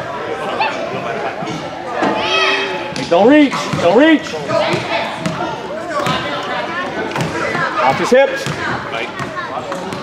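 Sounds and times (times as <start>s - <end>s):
spectators' voices: 0.0s - 10.0s
basketball bouncing on hardwood floor: 8.4s - 9.3s.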